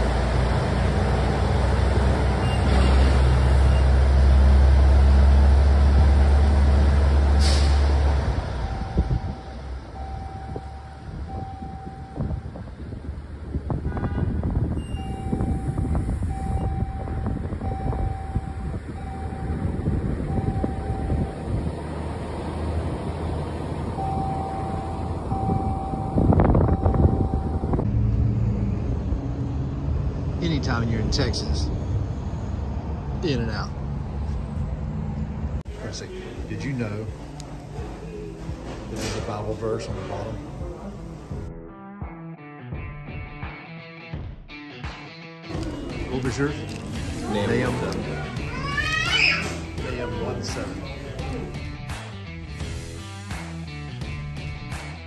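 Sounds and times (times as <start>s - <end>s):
traffic noise: 0.0s - 41.5s, 45.5s - 55.0s
truck diesel engine rumbling: 0.0s - 41.5s, 45.5s - 54.8s
electronic beeper: 24.0s - 27.8s.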